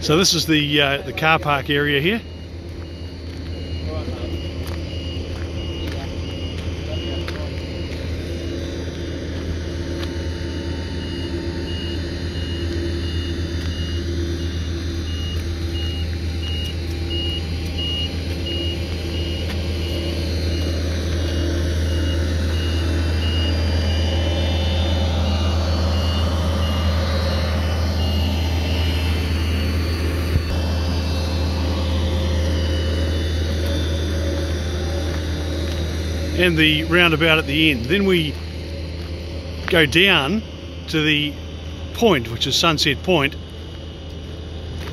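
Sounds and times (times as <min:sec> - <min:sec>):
reversing alarm beeping: 0:00.0 - 0:44.9
tractor engine running: 0:00.0 - 0:44.9.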